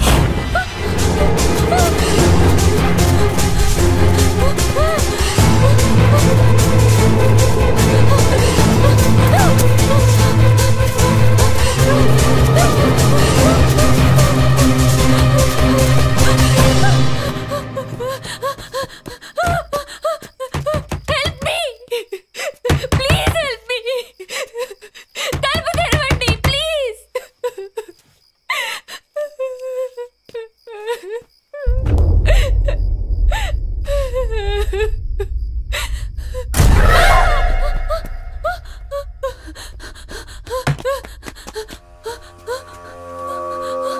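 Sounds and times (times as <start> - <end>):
film music: 0.0 - 19.9, 31.8 - 43.9
woman gasping and panting: 4.2 - 6.3, 16.2 - 25.9, 27.1 - 29.9, 30.7 - 34.9, 35.7 - 36.5, 37.6 - 43.9.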